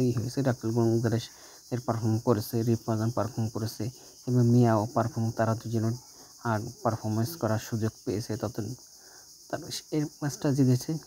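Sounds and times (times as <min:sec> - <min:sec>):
man talking: 0:00.0 - 0:08.8, 0:09.5 - 0:11.0
high-pitched hiss: 0:00.0 - 0:11.0.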